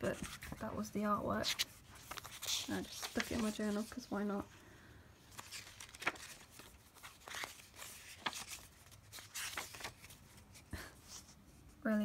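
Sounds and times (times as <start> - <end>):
notebook pages turning: 1.4 - 4.1, 5.3 - 10.5.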